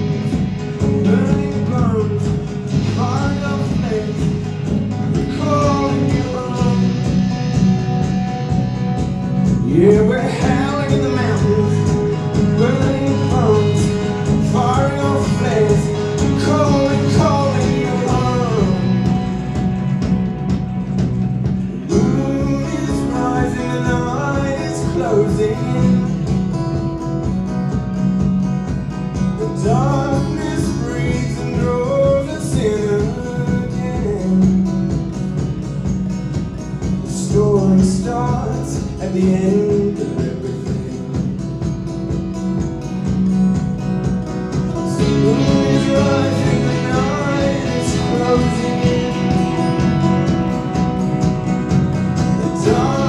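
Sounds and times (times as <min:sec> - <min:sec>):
man singing: 0:00.0 - 0:07.2, 0:09.6 - 0:19.5, 0:21.8 - 0:26.5, 0:29.4 - 0:35.0, 0:37.0 - 0:41.4, 0:44.9 - 0:50.8, 0:52.2 - 0:53.0
acoustic guitar: 0:00.0 - 0:53.0
bass guitar: 0:00.0 - 0:53.0
drums: 0:00.0 - 0:53.0
electric guitar: 0:00.0 - 0:53.0.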